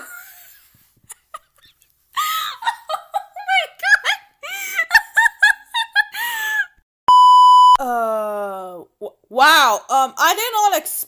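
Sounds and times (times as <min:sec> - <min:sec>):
person laughing: 0:00.0 - 0:04.1, 0:04.7 - 0:06.7
electronic beep: 0:07.1 - 0:07.8.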